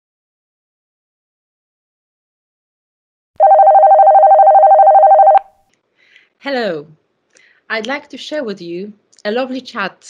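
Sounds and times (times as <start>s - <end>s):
electronic telephone ringing: 3.4s - 5.5s.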